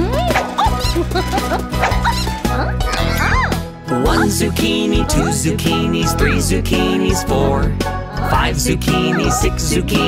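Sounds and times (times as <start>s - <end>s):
children's song backing music: 3.5s - 10.0s.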